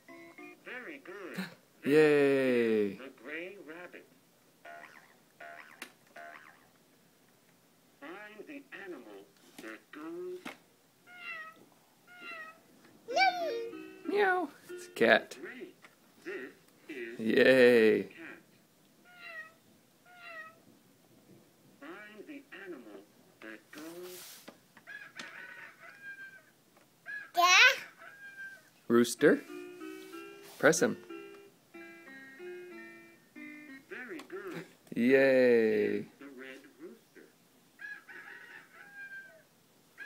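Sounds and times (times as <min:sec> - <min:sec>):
toy speaker warbling sounds: 0:04.6 - 0:06.7, 0:11.1 - 0:14.4, 0:19.0 - 0:20.6
toy rooster crow through speaker: 0:24.9 - 0:26.5, 0:27.1 - 0:28.7, 0:37.8 - 0:39.4.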